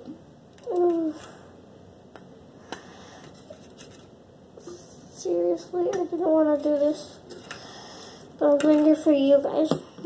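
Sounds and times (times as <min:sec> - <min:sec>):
faint clicks and taps: 0:08.4 - 0:09.0.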